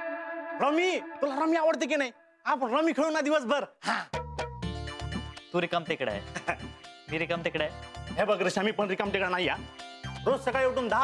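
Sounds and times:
man talking animatedly: 0.6s - 3.8s
background music with low bass: 4.2s - 11.0s.

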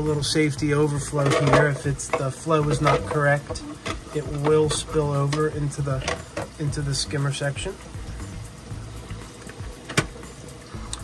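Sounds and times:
steady low hum: 0.0s - 11.0s
water running: 0.0s - 11.0s.

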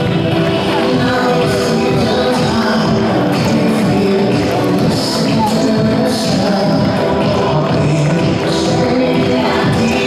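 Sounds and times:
music over stadium loudspeakers: 0.0s - 10.0s.

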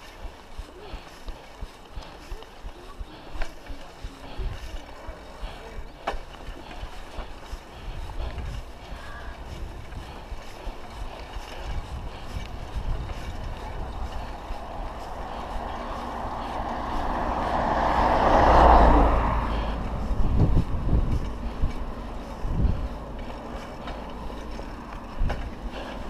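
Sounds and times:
low road rumble: 0.0s - 26.0s
wind rushing over microphone: 6.8s - 26.0s.

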